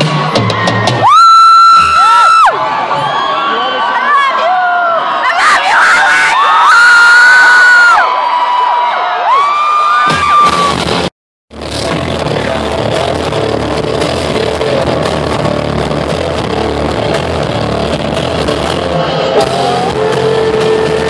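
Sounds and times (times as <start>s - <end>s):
rock band playing loud live: 0.0s - 2.2s, 10.1s - 21.0s
crowd screaming and cheering: 0.0s - 21.0s.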